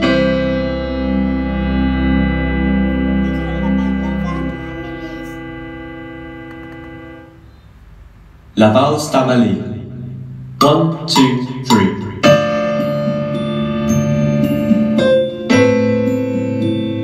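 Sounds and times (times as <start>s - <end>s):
piano chord ringing: 0.0s - 7.4s, 11.6s - 17.0s.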